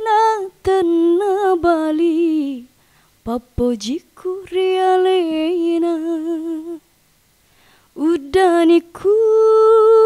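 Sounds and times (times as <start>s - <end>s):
woman singing unaccompanied: 0.0s - 6.9s, 7.9s - 10.0s.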